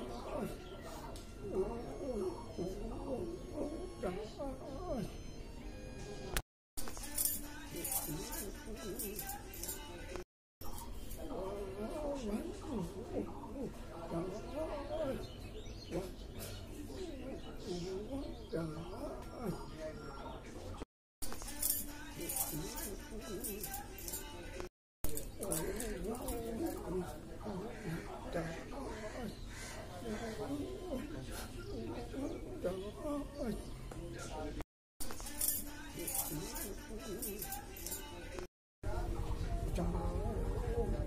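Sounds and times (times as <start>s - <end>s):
bangles clinking: 6.8s - 11.4s, 21.2s - 27.1s, 35.0s - 38.5s.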